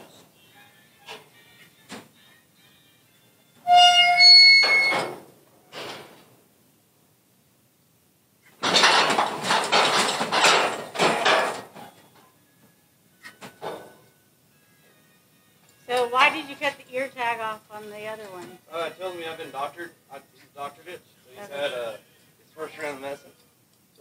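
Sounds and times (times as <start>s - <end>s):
high metal squeal: 3.6s - 5.2s
metal gates rattling and clanging: 8.6s - 12.0s.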